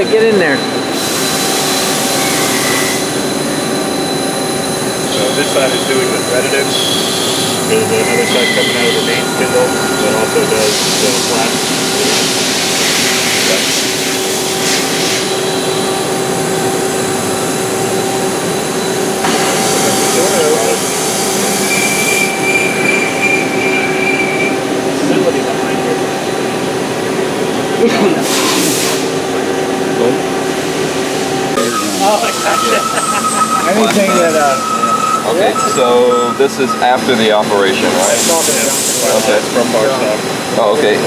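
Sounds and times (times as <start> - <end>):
high machine whine: 0.0 - 41.0
lathe humming and whining: 0.0 - 41.0
coolant spray hissing: 5.0 - 23.0, 28.2 - 29.2, 34.0 - 41.0.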